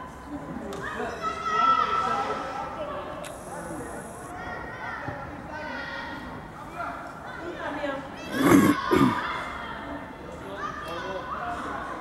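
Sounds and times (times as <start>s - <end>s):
children calling and shouting: 4.0s - 12.0s.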